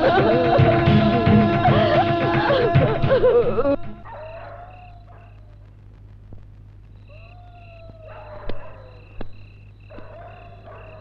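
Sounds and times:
low steady hum: 0.0s - 11.0s
animal long drawn-out call: 7.0s - 9.1s.

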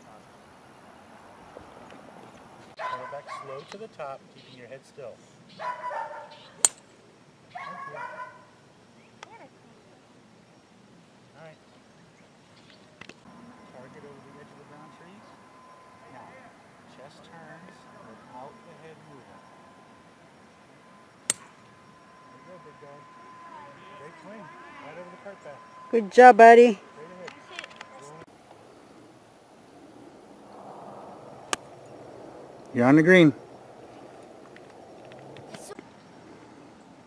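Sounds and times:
high whining call: 13.2s - 37.0s
golf club striking ball: 21.3s - 21.7s.

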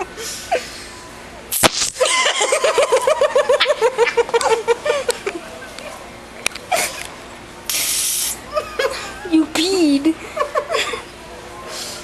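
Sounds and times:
woman laughing: 2.0s - 5.3s, 8.5s - 11.1s
aerosol can spraying hiss: 7.7s - 8.4s.

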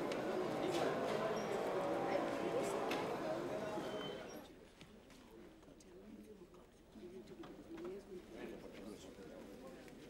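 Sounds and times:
murmur of audience voices: 0.0s - 4.6s.

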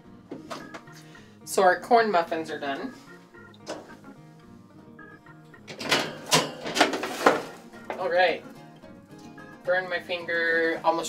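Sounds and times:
background music: 0.0s - 11.0s
oven door opening: 5.6s - 7.6s
muffin pan clattering on rack: 5.7s - 8.0s.

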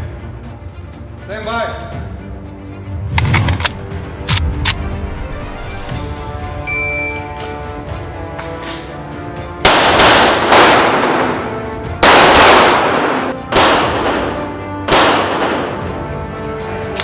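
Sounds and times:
background music: 0.0s - 17.0s
pistol shots echoing: 9.6s - 16.0s.

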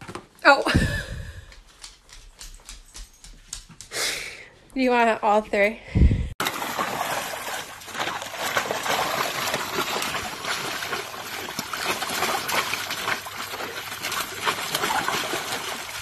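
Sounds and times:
dog splashing in water: 6.4s - 16.0s
garden hose running: 6.4s - 16.0s.

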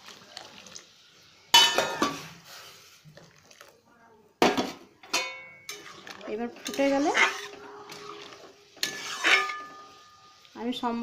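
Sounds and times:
metal spoon striking pan: 4.4s - 5.9s, 8.8s - 10.2s.

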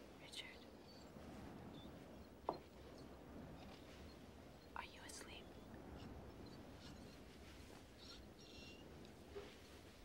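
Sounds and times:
faint whisper-like sounds: 0.0s - 10.0s.

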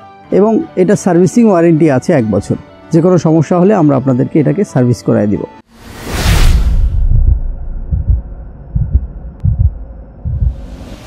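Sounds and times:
rising whoosh: 5.7s - 11.0s
deep heartbeat-like double thumps: 6.6s - 10.7s.

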